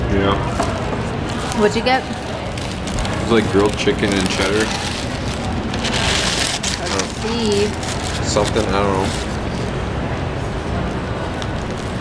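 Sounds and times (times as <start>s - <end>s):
paper wrapping rustling: 0.6s - 9.8s.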